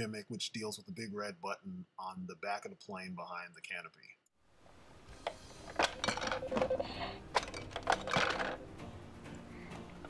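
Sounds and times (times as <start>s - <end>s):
plastic toy clatter: 7.4s - 8.6s.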